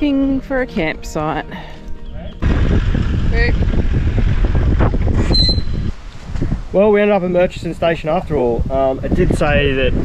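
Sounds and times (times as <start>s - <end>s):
wind buffeting microphone: 2.4s - 10.0s.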